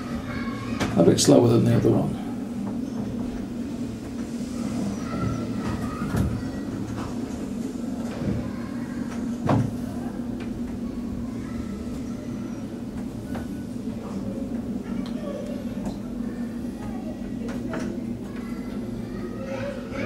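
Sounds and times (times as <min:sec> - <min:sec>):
lift running hum: 0:00.0 - 0:20.0.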